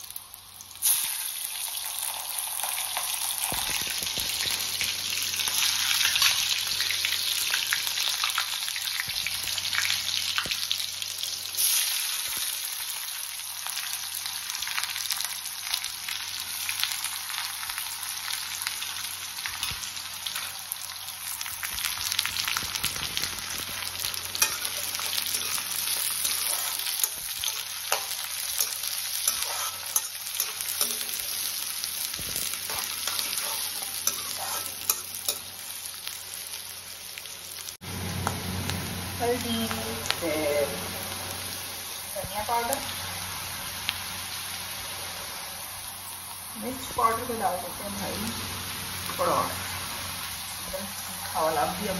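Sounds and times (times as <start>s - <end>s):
hot oil sizzling and crackling: 0.0s - 51.9s.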